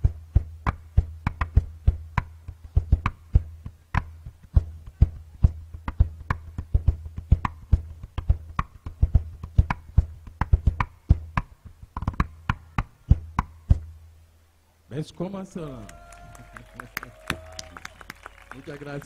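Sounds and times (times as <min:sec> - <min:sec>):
calabash drum strikes: 0:00.0 - 0:14.0.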